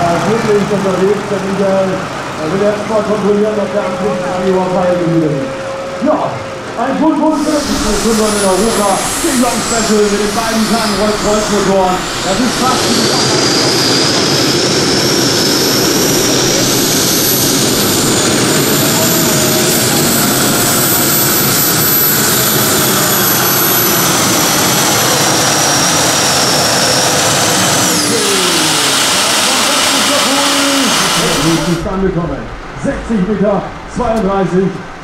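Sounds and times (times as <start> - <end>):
gas turbine engine whine: 0.0 - 35.0.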